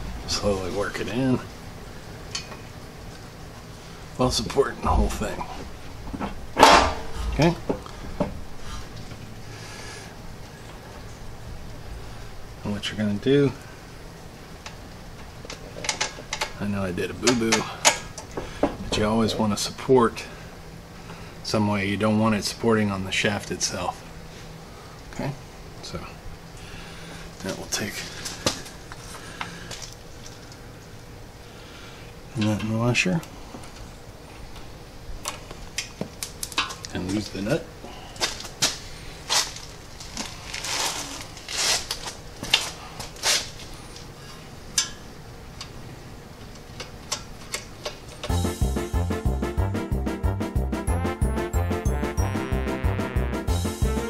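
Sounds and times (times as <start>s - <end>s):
low background noise: 0.0s - 54.0s
low steady hum: 0.0s - 54.0s.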